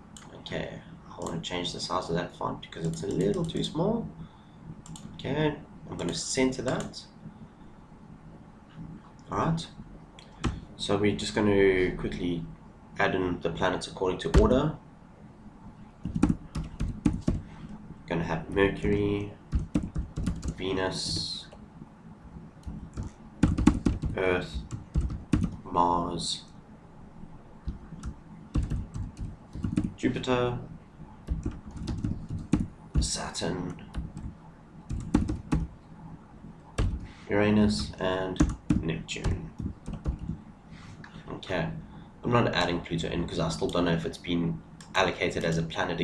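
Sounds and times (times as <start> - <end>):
computer keyboard typing: 2.8 - 3.8, 4.8 - 5.2, 6.0 - 7.0, 16.0 - 17.5, 18.5 - 21.3, 22.6 - 25.7, 27.6 - 30.0, 31.2 - 35.7, 36.8 - 40.4.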